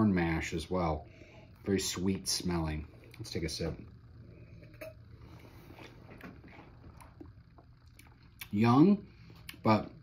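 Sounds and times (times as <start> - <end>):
low room hum: 0.0 - 10.0
sipping and swallowing: 5.8 - 8.5.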